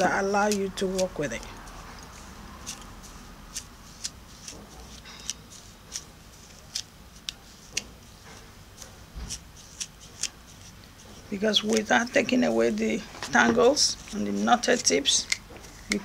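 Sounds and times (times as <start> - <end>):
comb scratching through hair: 0.0 - 16.0.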